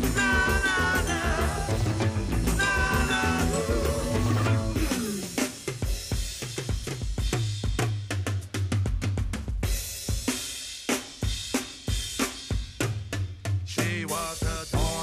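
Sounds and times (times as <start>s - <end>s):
rock drum kit: 0.0s - 15.0s.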